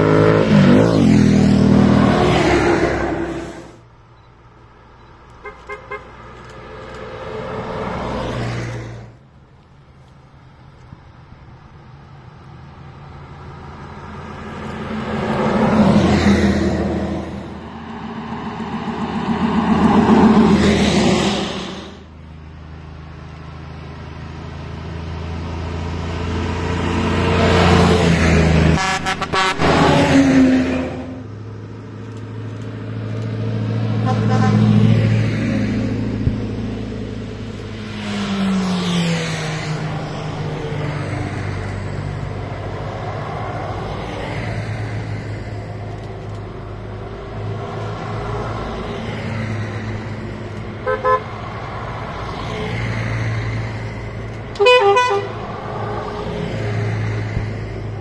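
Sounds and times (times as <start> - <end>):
buses and truck driving past: 0.0 - 58.0
vehicle horns tooting: 5.4 - 6.2, 28.7 - 30.0, 34.0 - 34.8, 50.8 - 51.3, 54.6 - 55.4.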